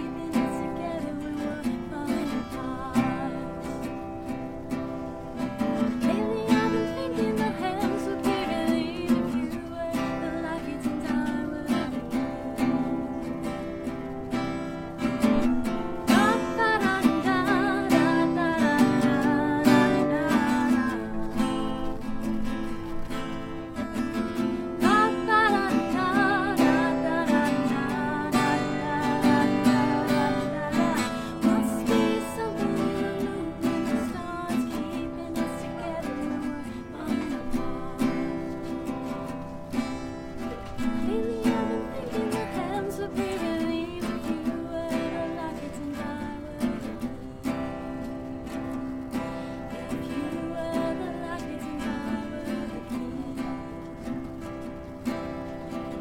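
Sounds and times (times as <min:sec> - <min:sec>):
strummed acoustic guitar: 0:00.0 - 0:56.0
woman singing: 0:00.0 - 0:56.0.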